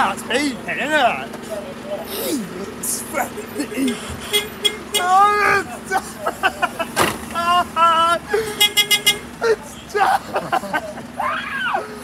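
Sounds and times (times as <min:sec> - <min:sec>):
lorry engine humming: 0:00.0 - 0:12.0.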